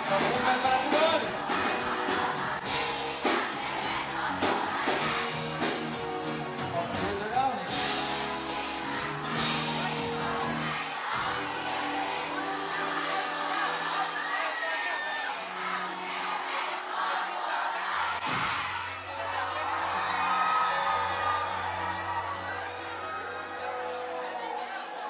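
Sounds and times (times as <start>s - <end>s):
live amplified band music: 0.0s - 17.2s, 18.3s - 25.0s
crowd cheering and whooping: 8.7s - 25.0s.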